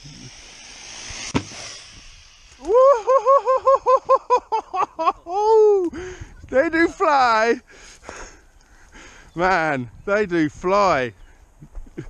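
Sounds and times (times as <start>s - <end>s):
rc car motor and tyres whining: 0.0s - 2.8s
person whooping: 2.6s - 4.4s, 5.2s - 6.0s.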